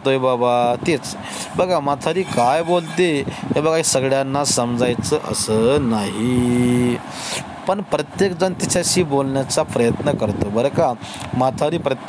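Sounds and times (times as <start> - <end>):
man drawing out long vowel: 5.2 - 7.2.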